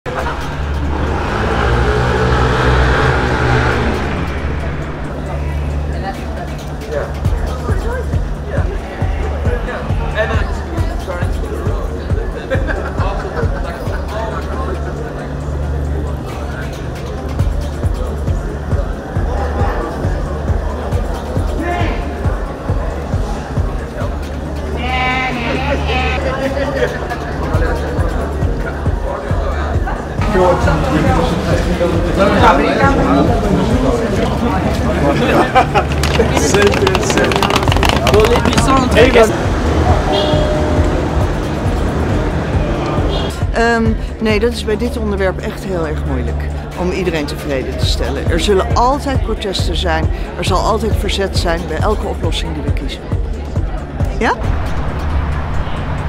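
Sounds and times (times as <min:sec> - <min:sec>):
vehicle engine running: 0:00.0 - 0:06.6, 0:33.9 - 0:46.7
people's voices: 0:00.0 - 0:56.0.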